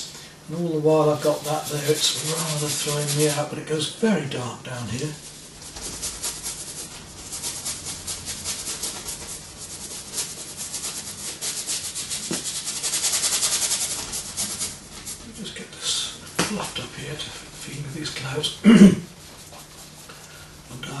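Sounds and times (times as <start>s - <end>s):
paintbrush scrubbing canvas: 0.5s - 3.5s, 4.8s - 21.0s.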